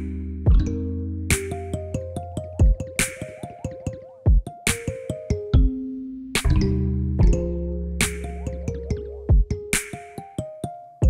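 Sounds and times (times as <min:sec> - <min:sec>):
pitched synth notes groove: 0:00.0 - 0:10.8
deep thud: 0:06.4 - 0:07.4.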